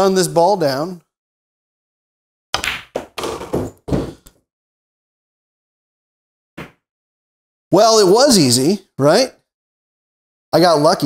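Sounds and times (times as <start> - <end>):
balls knocking cushion and pocket: 2.6 - 4.3
pool balls clacking: 2.6 - 4.3.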